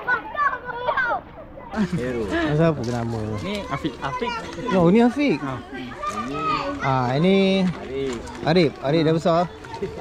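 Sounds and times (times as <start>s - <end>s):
children calling out: 0.0s - 1.9s, 3.3s - 7.4s.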